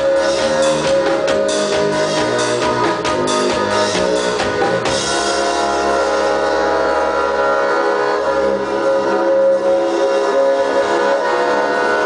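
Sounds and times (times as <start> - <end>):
accordion drone: 0.0 - 12.0
upright double bass: 0.0 - 12.0.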